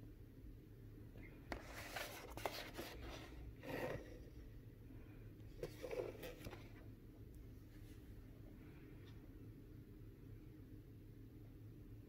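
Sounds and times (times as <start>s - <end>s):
cardboard box scraping on wood: 2.2s - 4.3s.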